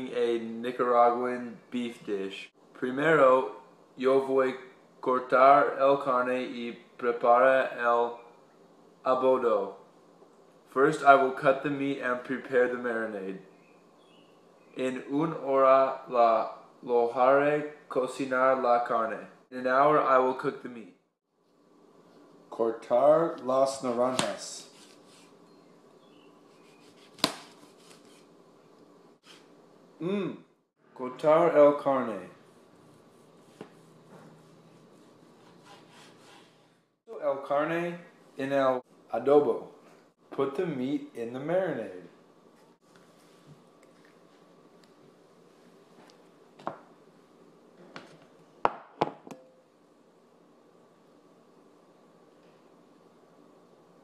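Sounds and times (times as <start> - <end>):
knife slicing an orange: 26.6 - 28.3.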